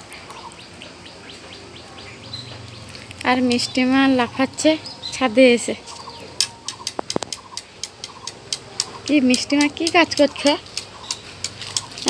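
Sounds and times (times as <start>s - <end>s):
bird chirping: 0.1s - 12.0s.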